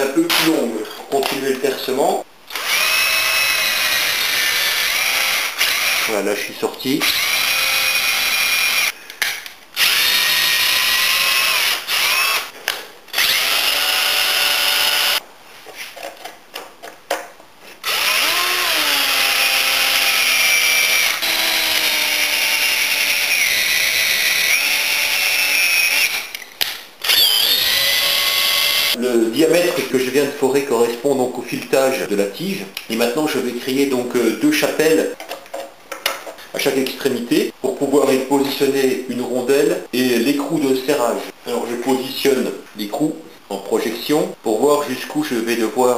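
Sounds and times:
electric drill boring wood: 2.5 - 6.1, 7.0 - 8.9, 9.8 - 12.5, 13.1 - 15.2, 17.8 - 26.3, 27.0 - 29.0.

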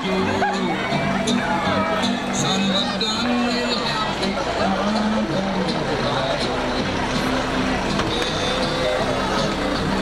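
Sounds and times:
people talking: 0.0 - 10.0.

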